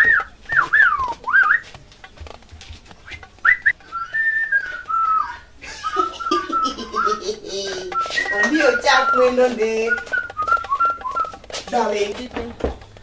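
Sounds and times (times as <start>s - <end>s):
person whistling: 0.0s - 1.7s, 3.0s - 11.4s.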